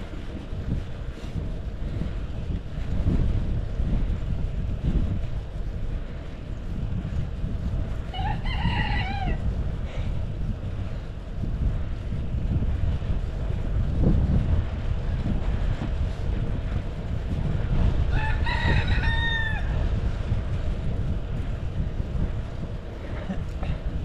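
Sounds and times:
wind rumble on microphone: 0.0s - 24.0s
rooster crowing: 8.1s - 9.4s, 18.1s - 19.8s.

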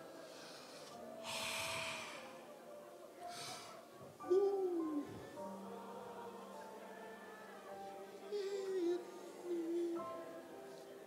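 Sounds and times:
loud breath into microphone: 0.2s - 2.4s, 3.3s - 3.8s.

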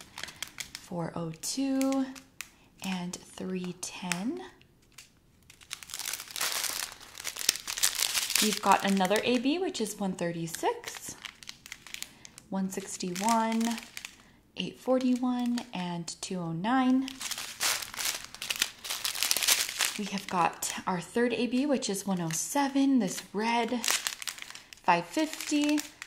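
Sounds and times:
plastic bags crinkling: 0.0s - 2.9s, 3.6s - 15.8s, 16.8s - 26.0s.

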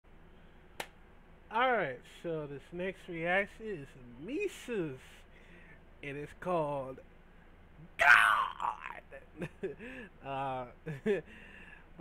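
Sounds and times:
faint low hum: 0.1s - 12.0s
sharp click: 0.8s - 1.0s
man speaking: 1.5s - 5.1s, 6.0s - 7.0s, 10.2s - 10.8s.

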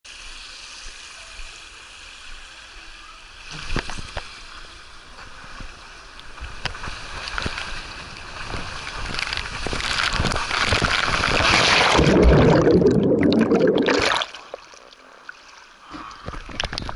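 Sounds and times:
water running down a slide: 0.1s - 15.0s
water rushing under sliding rider: 0.2s - 15.1s.

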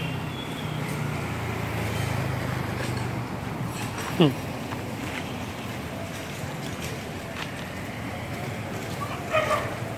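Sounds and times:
street background hiss: 0.0s - 9.9s.

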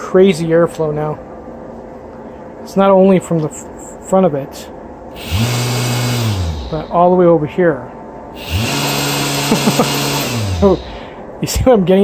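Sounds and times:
fan air rushing: 0.0s - 12.0s
electric motor whine: 5.2s - 7.0s, 8.4s - 11.0s.

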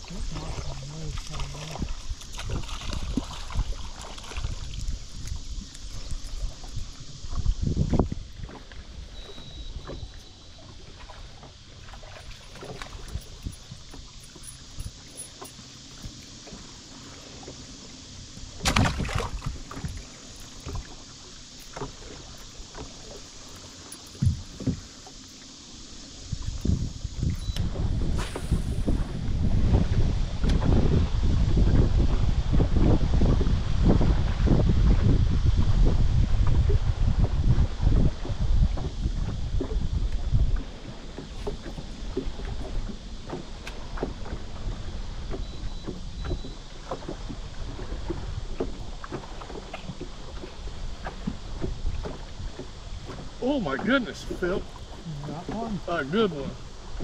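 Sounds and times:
wind buffeting microphone: 0.0s - 11.5s, 12.5s - 16.6s, 18.3s - 21.0s, 26.1s - 57.0s
water lapping against boat hull: 0.0s - 57.0s.

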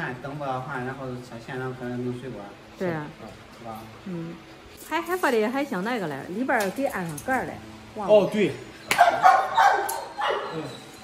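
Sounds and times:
dog barking: 8.9s - 10.7s.

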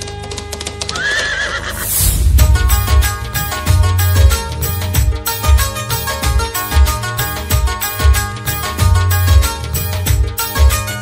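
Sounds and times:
clip-clop hoofbeats: 0.0s - 1.8s
horse whinny: 0.9s - 1.9s
sustained drone: 1.8s - 5.0s
devotional song with heavy bass: 1.8s - 5.9s.

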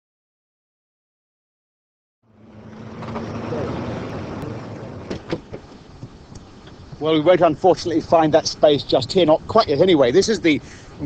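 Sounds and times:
car driving away: 2.2s - 7.3s.

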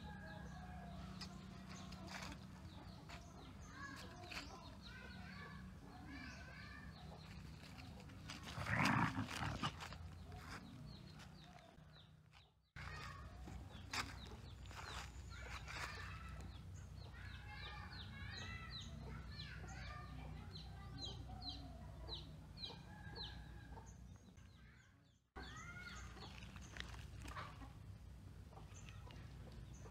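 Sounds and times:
dog growling: 8.4s - 10.0s.

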